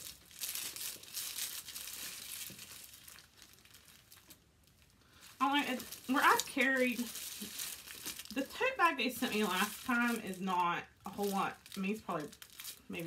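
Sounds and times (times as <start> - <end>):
packing material crinkling: 0.0 - 13.0.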